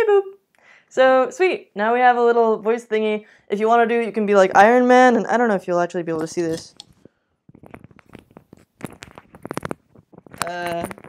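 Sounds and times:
small clicks and rustles: 6.7s - 11.0s.

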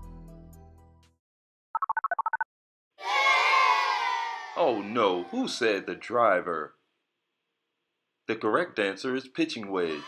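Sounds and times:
short electronic beeps: 1.8s - 2.4s.

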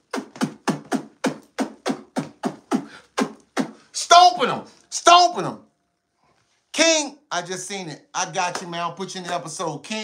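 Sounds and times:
man making mouth sound effects: 0.0s - 4.0s.

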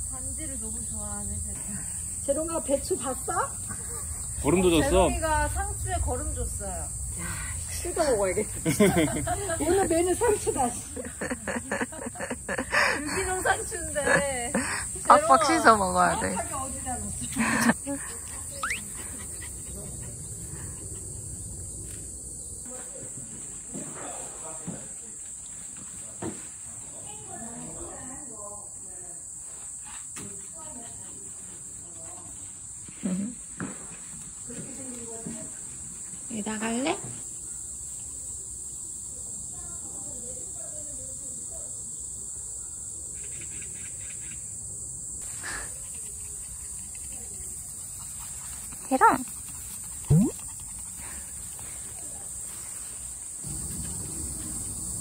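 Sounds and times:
high-pitched insect buzz: 0.0s - 19.8s, 42.8s - 55.0s
brief vocal sound: 50.1s - 50.4s.

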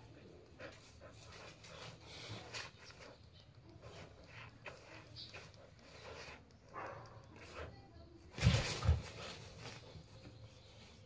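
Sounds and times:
dog panting faintly: 0.0s - 8.2s.

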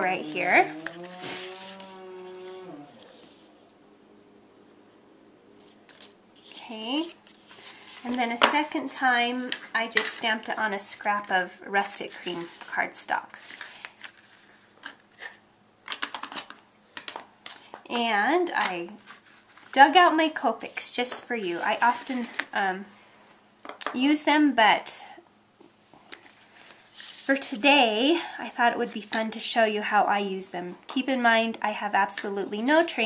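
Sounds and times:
woman humming one tone: 0.7s - 3.1s.

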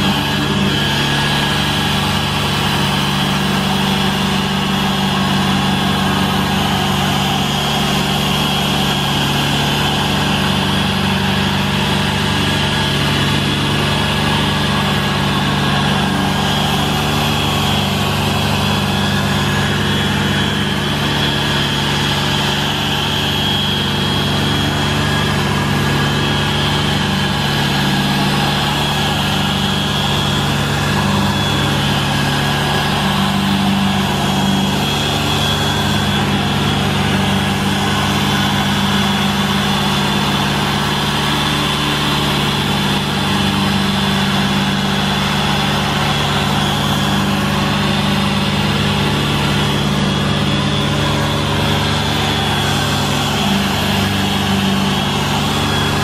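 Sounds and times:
generator engine running: 0.0s - 56.0s
polisher motor whine: 0.0s - 56.0s.

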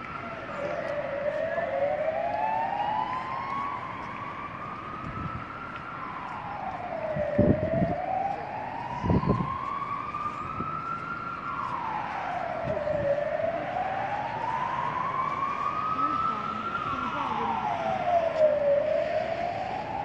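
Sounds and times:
emergency vehicle siren wailing: 0.0s - 20.0s.

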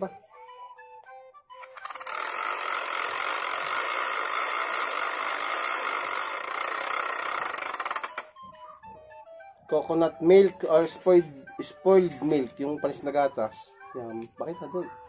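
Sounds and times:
spinner wheel clicking rattle: 1.6s - 8.4s.

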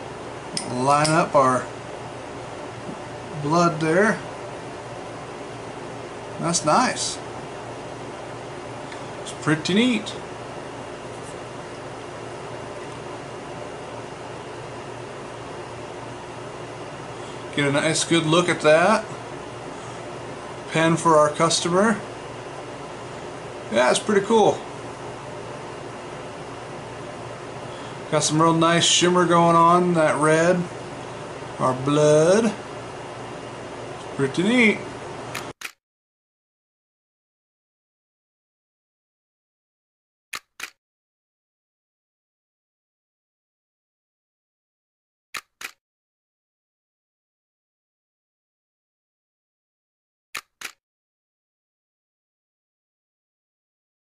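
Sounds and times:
click: 35.3s - 35.8s, 40.4s - 40.8s, 45.4s - 45.8s, 50.4s - 50.8s.

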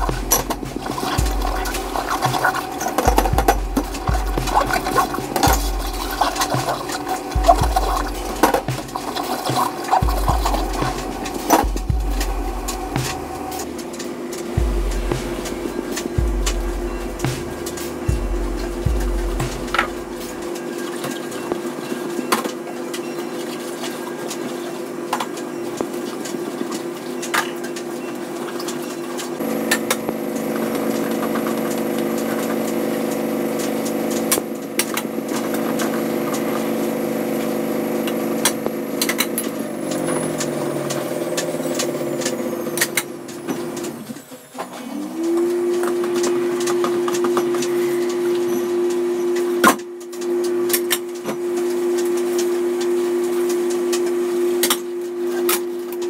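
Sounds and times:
steady hum: 0.0s - 22.5s, 29.4s - 44.3s.

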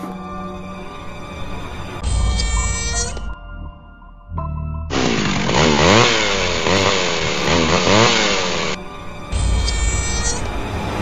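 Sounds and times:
low music drone: 0.0s - 11.0s
rasping motor revving: 4.9s - 8.8s.

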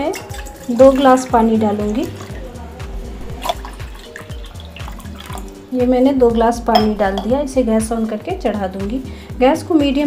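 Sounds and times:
water splashing into steel pan: 0.0s - 2.6s, 3.2s - 5.7s
background music: 0.0s - 10.0s.

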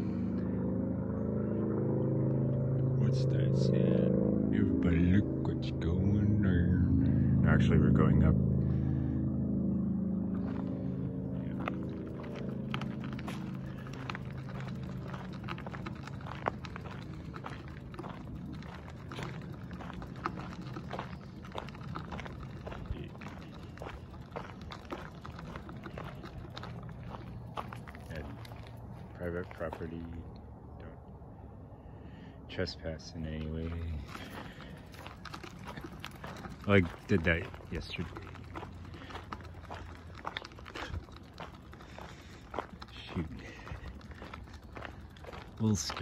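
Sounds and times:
low engine drone: 0.0s - 46.0s
bicycle crunching on gravel: 10.3s - 30.0s, 33.3s - 46.0s.

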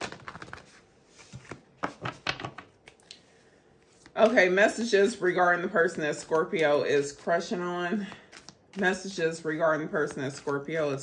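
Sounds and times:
tarot cards being shuffled: 0.0s - 3.2s, 3.8s - 4.4s, 8.1s - 9.0s.

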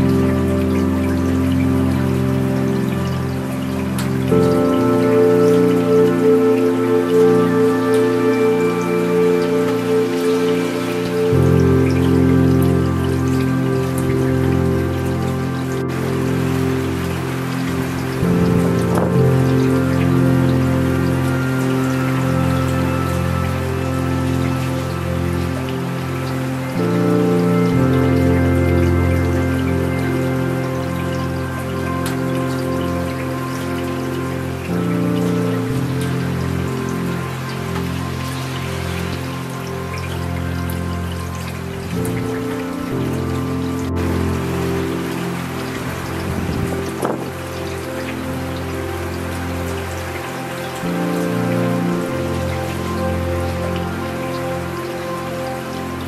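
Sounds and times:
ambient music held chords: 0.0s - 56.0s
rain falling: 0.0s - 56.0s.

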